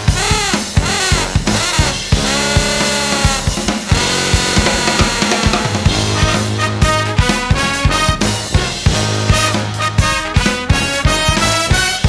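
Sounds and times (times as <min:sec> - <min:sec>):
brass band playing: 0:00.0 - 0:12.0
drum kit beat: 0:00.0 - 0:12.0.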